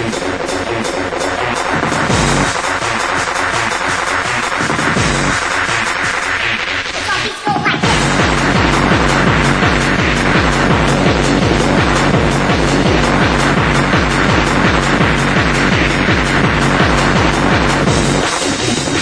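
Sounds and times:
fast kick drum: 0.0 - 19.0
noisy synth layers: 0.0 - 19.0.

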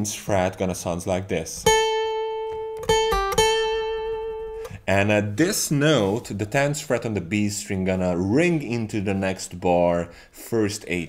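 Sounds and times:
acoustic guitar picked notes: 1.6 - 6.2.

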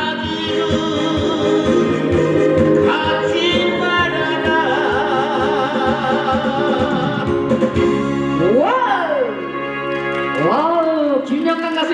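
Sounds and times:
man singing into microphone: 0.0 - 7.8
accompaniment music with beat: 0.0 - 11.8.

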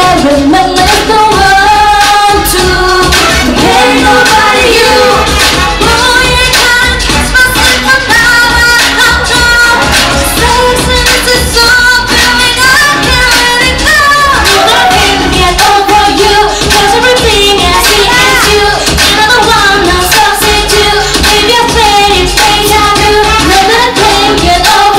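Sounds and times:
pop dance backing track: 0.0 - 24.9
women singing: 0.0 - 24.9.

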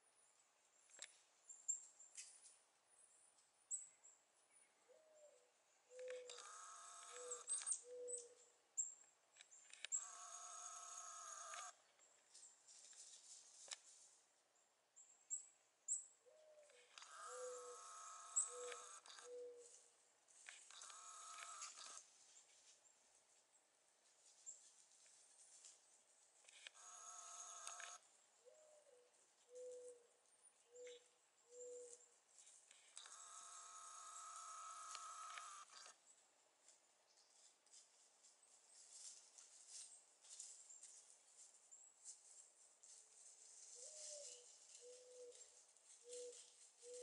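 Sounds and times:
faint wild turkey call: 4.8 - 8.5, 16.2 - 19.8, 26.8 - 32.0, 43.7 - 47.0
bird cooing: 4.9 - 8.4, 16.2 - 19.8, 28.4 - 30.1, 30.7 - 32.0, 43.8 - 47.0.

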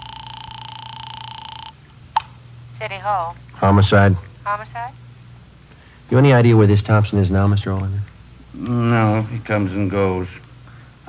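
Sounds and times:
telephone ring tone: 0.0 - 1.8.

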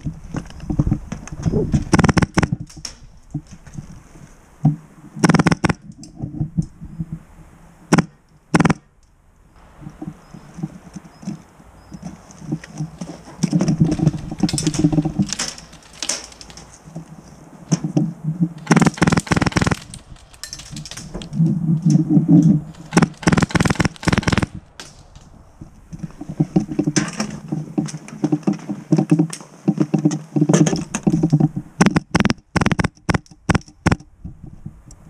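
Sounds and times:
airsoft gunfire clicks: 5.2 - 5.8, 18.6 - 19.9, 22.9 - 24.6, 31.8 - 34.0
gear clatter: 12.6 - 16.8.

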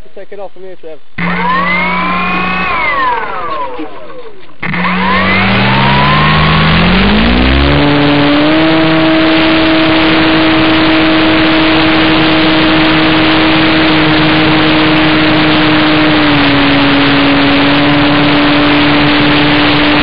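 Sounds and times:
electric motor whine: 1.2 - 20.0
propeller wash rushing: 1.2 - 20.0.

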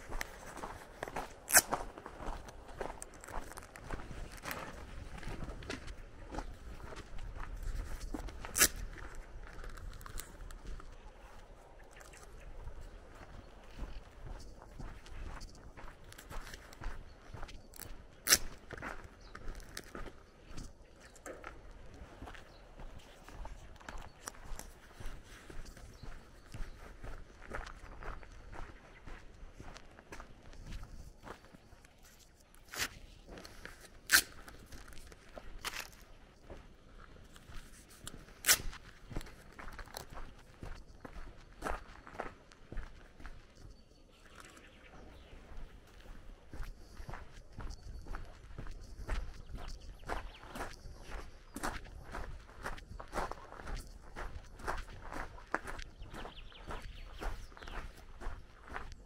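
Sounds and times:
footsteps walking: 0.0 - 59.0.

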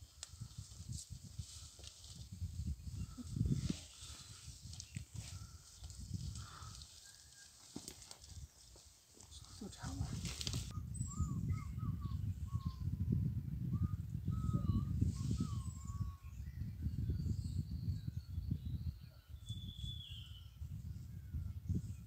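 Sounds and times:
low microphone rumble: 9.8 - 19.0
short whistled bird notes: 19.4 - 20.6.

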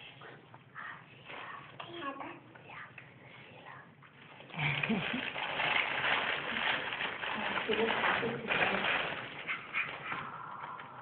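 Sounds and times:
faint dog sounds: 9.4 - 11.0.

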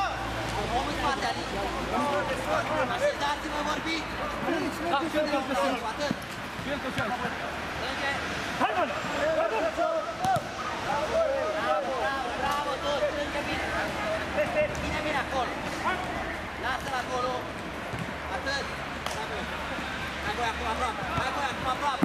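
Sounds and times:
players shouting: 8.6 - 16.4.

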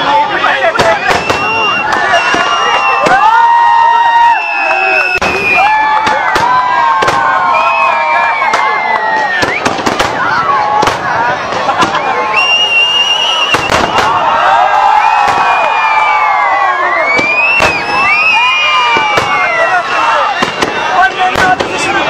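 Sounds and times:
crowd shouting: 0.0 - 22.0
fireworks bursting: 0.0 - 22.0.

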